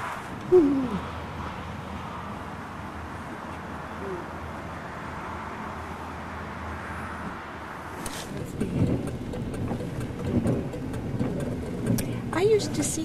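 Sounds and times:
car cabin noise: 7.1s - 13.0s.

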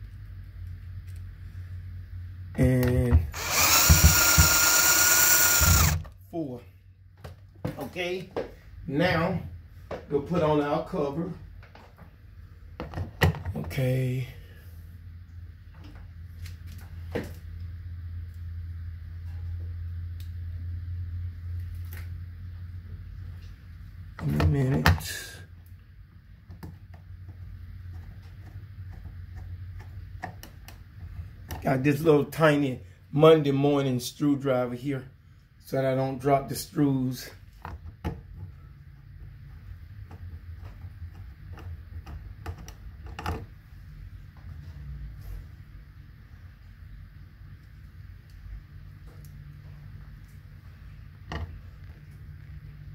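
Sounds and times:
steady low hum: 0.0s - 52.9s
screwdriver clicks and ticks: 3.4s - 6.0s.

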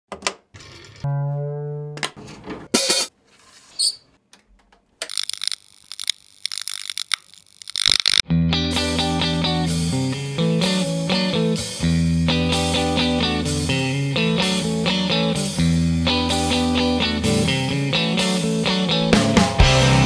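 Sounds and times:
rock band playing: 8.3s - 20.0s.

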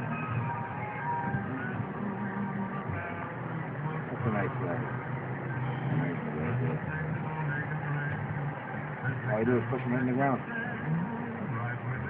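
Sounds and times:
vehicle engine humming: 0.0s - 12.0s
faint voices: 2.1s - 12.0s.

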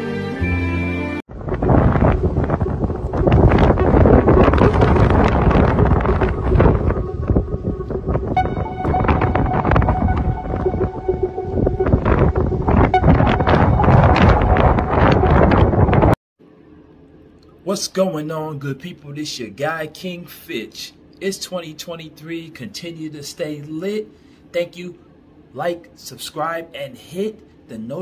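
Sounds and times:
wind buffeting microphone: 1.3s - 16.2s
higher tones: 2.5s - 16.2s.

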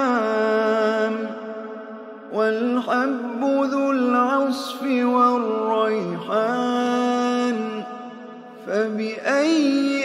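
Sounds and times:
man chanting recitation: 0.0s - 10.0s.

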